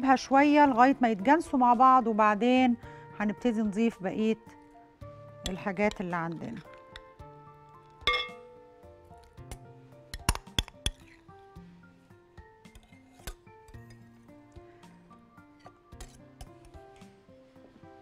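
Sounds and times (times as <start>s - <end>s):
soft background music: 0.0s - 18.0s
spoon clinking against glass bowls: 8.1s - 8.4s.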